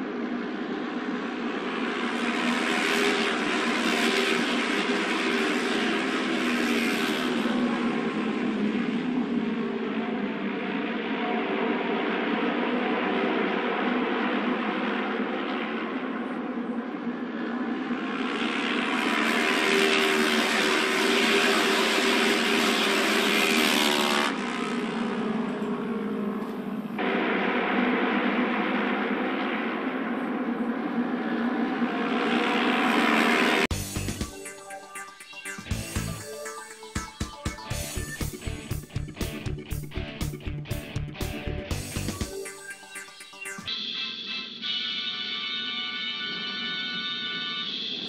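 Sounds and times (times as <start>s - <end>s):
motorcycle engines racing: 0.3s - 33.8s.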